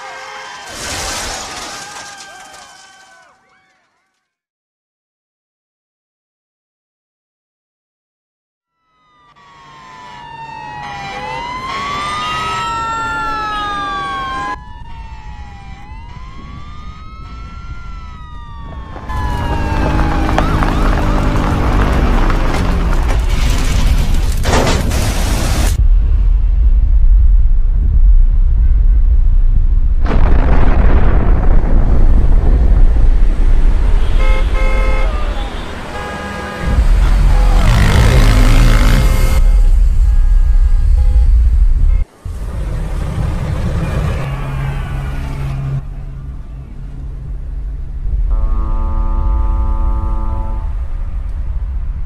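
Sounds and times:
heavy low rumble: 17.6s - 34.6s, 36.6s - 44.2s, 45.7s - 52.0s
long horn blast: 33.8s - 42.2s, 48.3s - 51.1s
car horns honking: 33.9s - 42.1s, 43.8s - 46.6s, 48.3s - 50.9s.

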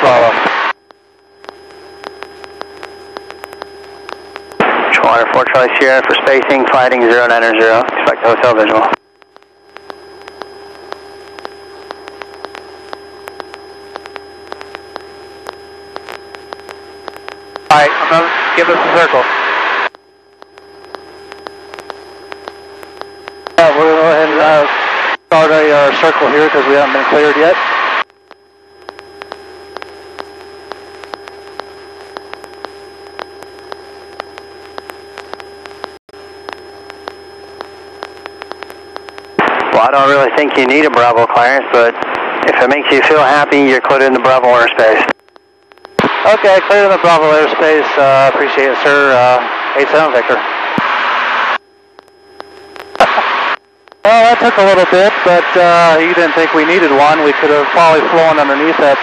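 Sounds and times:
electrical whine: 0.0s - 59.0s
faint clicks: 0.4s - 4.6s, 8.9s - 17.7s, 19.8s - 23.6s, 28.0s - 39.7s, 45.1s - 46.2s, 51.9s - 54.1s
sharp irregular clicks: 9.1s - 17.7s.

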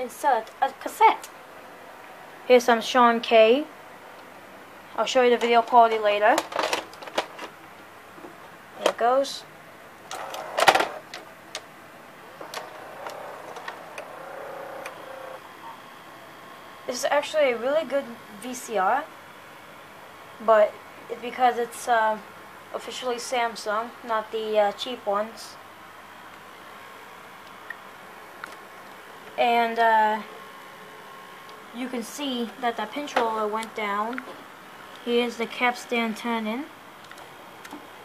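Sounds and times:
tape mechanism running: 10.0s - 15.8s
motor whirring: 12.4s - 15.8s.

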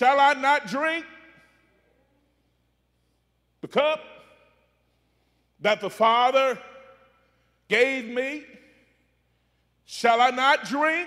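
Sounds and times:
man's voice echoing: 0.0s - 11.0s.

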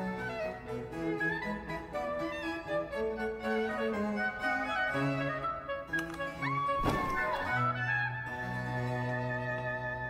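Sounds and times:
string music: 0.0s - 10.0s
person falling onto hard floor: 6.8s - 7.5s.

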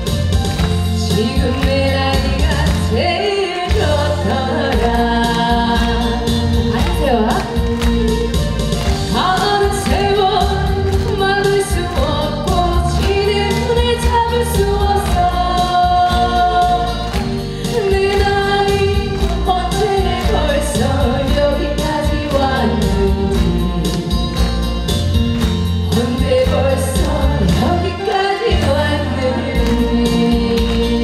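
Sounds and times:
amplified accompaniment with beat: 0.0s - 3.0s, 3.6s - 31.0s
woman singing into microphone: 0.8s - 8.2s, 9.0s - 24.6s, 25.9s - 31.0s.

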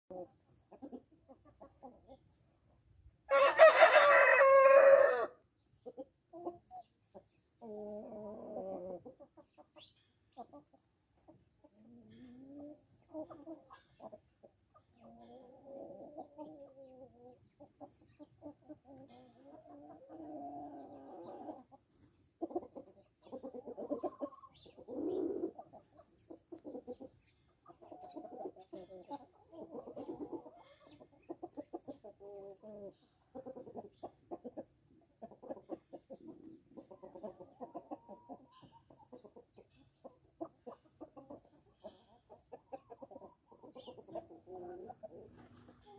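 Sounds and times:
hens clucking softly: 0.1s - 45.9s
rooster crowing: 3.3s - 5.4s.

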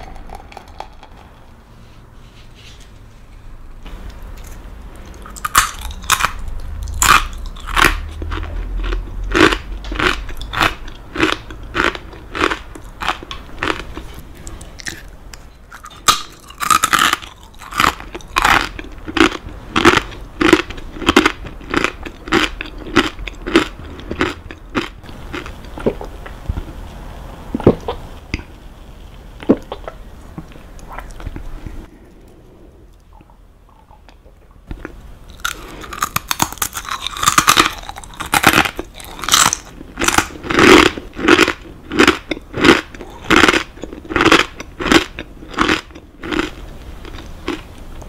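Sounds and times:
rice crackers being chewed: 4.2s - 26.8s, 32.9s - 48.0s.

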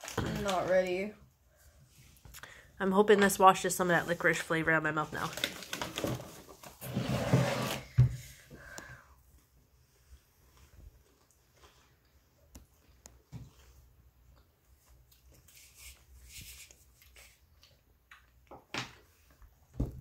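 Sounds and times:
candy wrapper rustle: 5.0s - 6.8s
people chewing candy: 11.0s - 18.6s.

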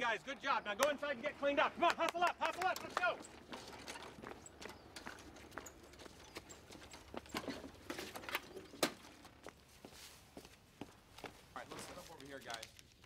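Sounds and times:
hard-soled footsteps on brick: 1.9s - 13.0s.

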